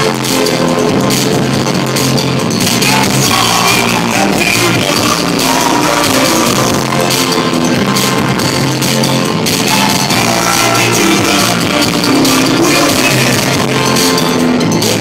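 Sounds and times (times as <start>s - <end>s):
live rock band playing: 0.0s - 15.0s.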